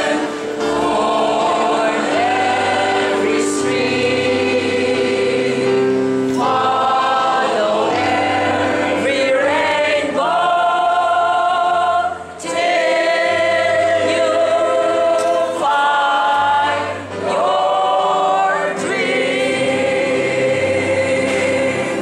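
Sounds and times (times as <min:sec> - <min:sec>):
mixed choir singing: 0:00.0 - 0:22.0.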